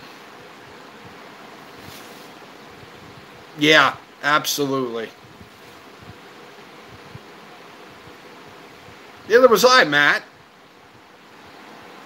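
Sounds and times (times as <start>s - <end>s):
low hiss of room noise: 0.0s - 12.0s.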